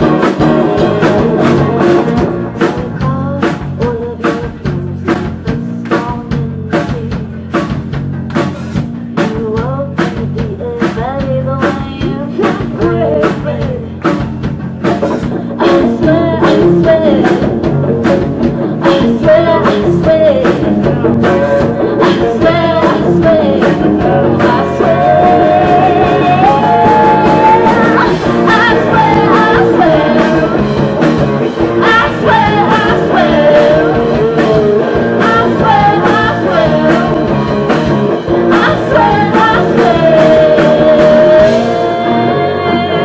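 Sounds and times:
rock band playing: 0.0s - 43.0s
woman singing: 2.1s - 7.8s, 9.1s - 14.3s, 15.0s - 31.0s, 31.6s - 43.0s.

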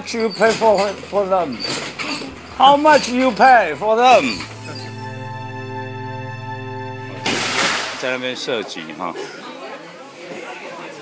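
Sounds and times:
indistinct chatter of voices: 7.8s - 11.0s.

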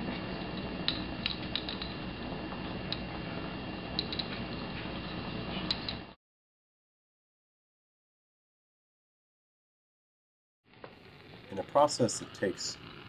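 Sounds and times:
steady background hiss: 0.0s - 6.2s, 10.7s - 13.0s.

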